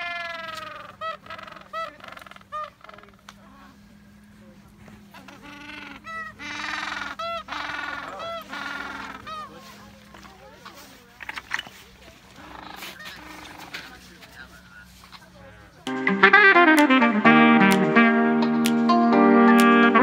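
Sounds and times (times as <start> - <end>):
penguins braying: 0.0 - 11.4, 12.1 - 18.6.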